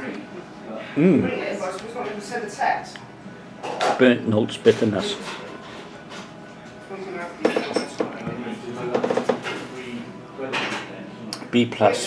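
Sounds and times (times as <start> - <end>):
tableware clinking: 7.4 - 8.2.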